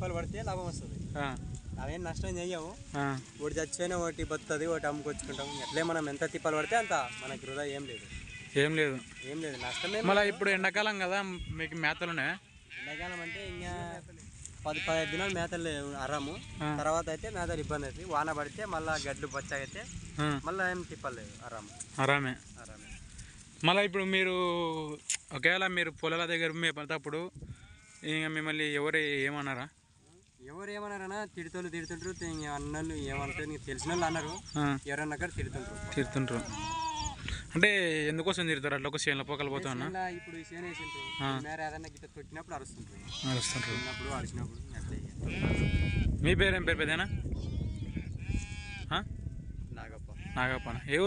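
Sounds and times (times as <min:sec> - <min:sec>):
sheep and goats bleating: 0:02.6 - 0:17.2, 0:18.7 - 0:23.8, 0:27.4 - 0:28.4, 0:30.1 - 0:37.4, 0:39.5 - 0:42.0, 0:42.9 - 0:46.3, 0:46.9 - 0:51.0.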